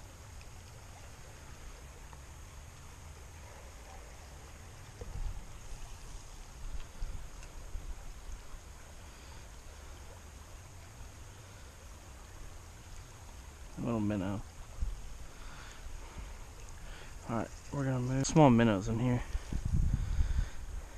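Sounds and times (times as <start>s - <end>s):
faint flowing water: 0.0s - 20.9s.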